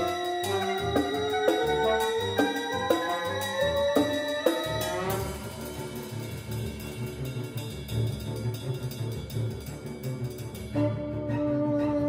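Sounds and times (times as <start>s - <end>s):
chamber ensemble playing: 0.0s - 12.0s.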